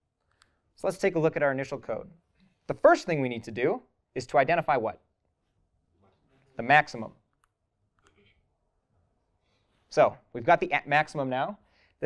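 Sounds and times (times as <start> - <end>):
person speaking: 0.8 - 8.5.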